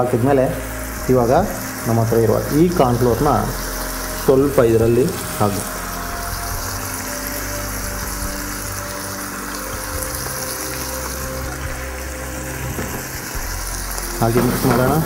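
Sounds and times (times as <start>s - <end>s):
music of long held notes: 0.0s - 15.0s
vegetables sizzling in a frying pan: 0.0s - 15.0s.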